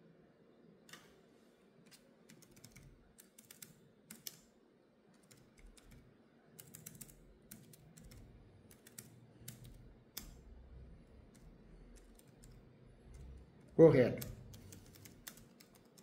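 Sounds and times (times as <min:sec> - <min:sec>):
typing on computer keyboard: 0:01.9 - 0:04.5, 0:05.2 - 0:16.0.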